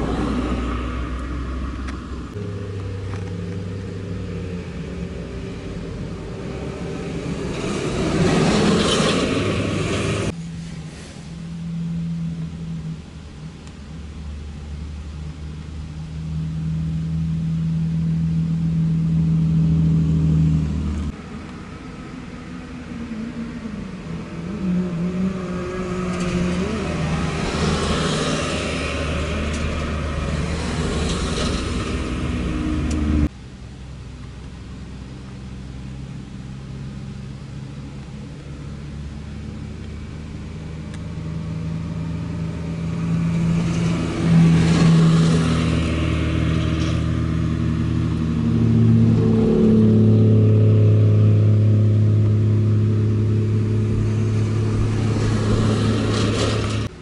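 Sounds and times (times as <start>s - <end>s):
truck diesel engine passing: 0.0s - 34.1s, 34.7s - 57.0s
car engines approaching: 0.0s - 57.0s
loud steady engine drone: 0.0s - 57.0s.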